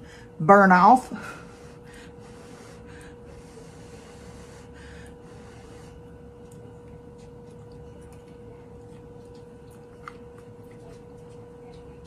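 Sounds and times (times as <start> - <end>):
steady faint hum: 0.0 - 12.0
faint puffs of breath: 1.2 - 6.0.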